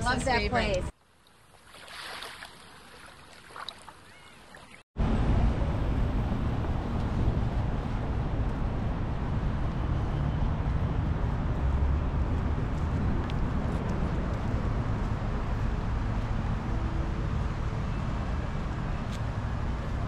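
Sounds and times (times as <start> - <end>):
street traffic: 0.0 - 1.0, 5.0 - 20.0
wind noise on microphone: 5.0 - 20.0.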